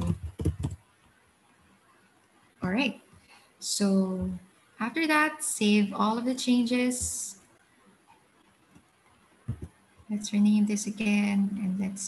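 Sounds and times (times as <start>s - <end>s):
computer keyboard typing: 0.0s - 0.8s.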